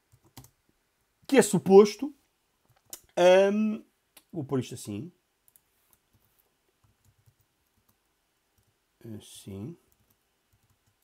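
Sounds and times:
keyboard keys clicking: 0:00.1 - 0:00.5.

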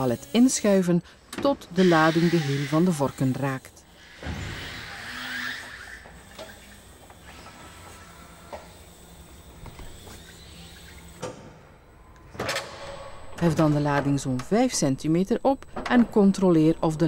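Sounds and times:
hydraulics humming: 0:00.0 - 0:17.0.

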